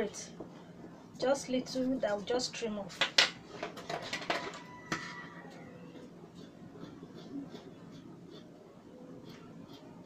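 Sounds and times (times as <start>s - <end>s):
tools knocking and clicking on table: 3.0s - 5.2s.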